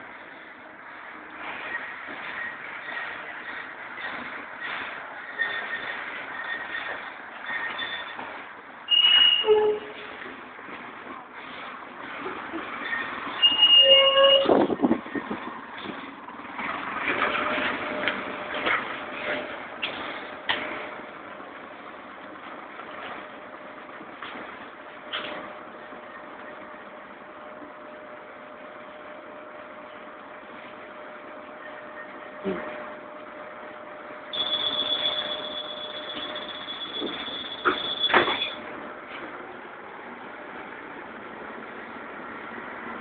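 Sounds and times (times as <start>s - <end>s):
bus engine idling: 0.0s - 43.0s
short electronic beep: 8.9s - 9.9s, 34.3s - 38.6s
knocks and clatter: 14.4s - 21.0s.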